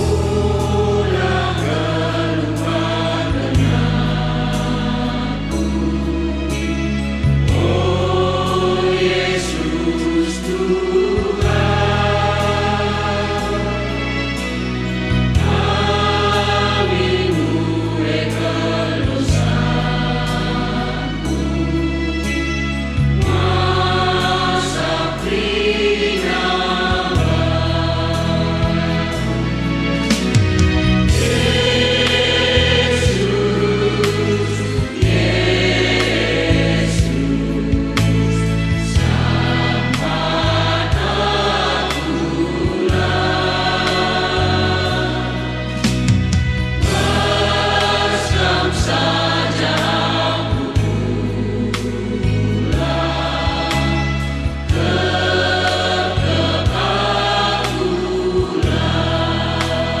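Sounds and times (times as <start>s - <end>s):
church choir singing a hymn: 0.0s - 60.0s
instrumental accompaniment: 0.0s - 60.0s.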